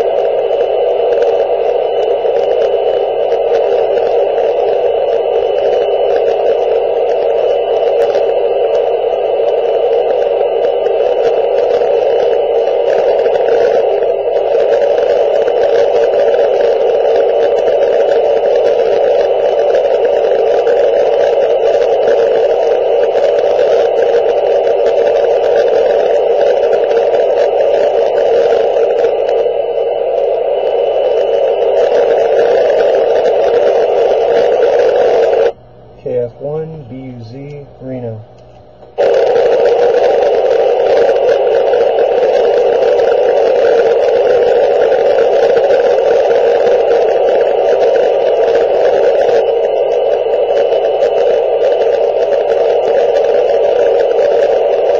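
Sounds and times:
radio static hiss: 0.0s - 54.9s.

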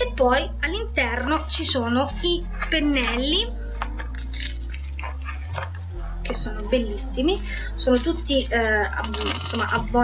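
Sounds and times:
low bass notes: 0.0s - 10.0s
paper wrapping crinkling: 3.9s - 6.0s.

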